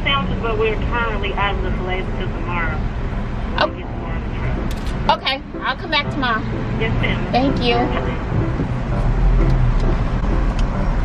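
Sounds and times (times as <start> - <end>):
car engine rumble inside cabin: 0.0 - 11.0.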